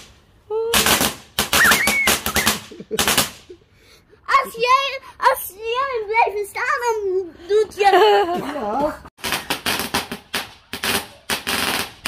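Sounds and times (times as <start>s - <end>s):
firecrackers banging and cracking: 0.0s - 3.6s, 9.2s - 12.0s.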